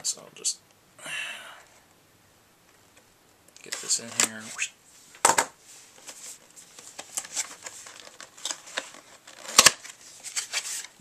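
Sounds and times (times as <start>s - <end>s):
cardboard box crinkling and scraping: 6.1s - 11.0s.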